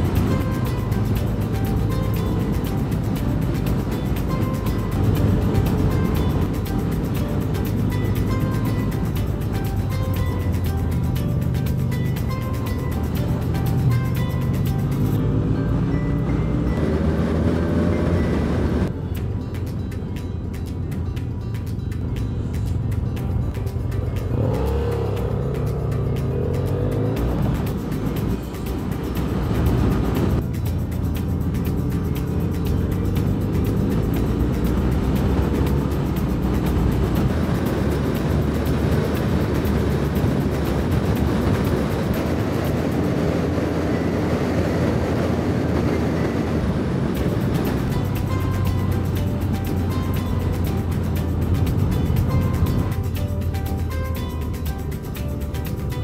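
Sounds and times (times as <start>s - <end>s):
background music: 0.0s - 56.0s
motorcycle engines accelerating: 0.0s - 56.0s
wind and road noise: 0.0s - 56.0s.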